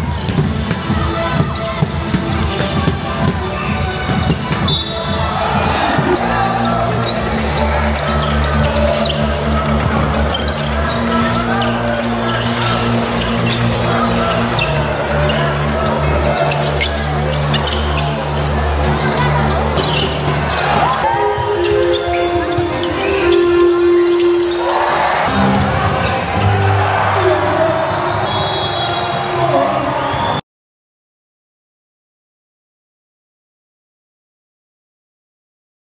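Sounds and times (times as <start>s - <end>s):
basketball bouncing: 0.0s - 6.8s
loud music with deep bass: 0.0s - 28.0s.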